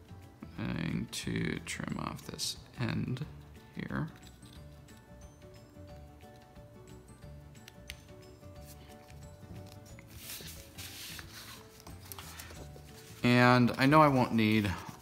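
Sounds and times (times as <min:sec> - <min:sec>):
soft background music: 0:00.0 - 0:15.0
paper rustle: 0:08.6 - 0:15.0
scissors cutting heavy paper: 0:08.8 - 0:13.2.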